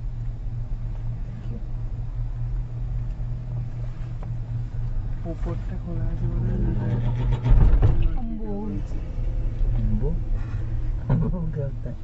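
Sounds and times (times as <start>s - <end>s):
cable car hum and rumble: 0.0s - 12.0s
passengers talking: 0.5s - 12.0s.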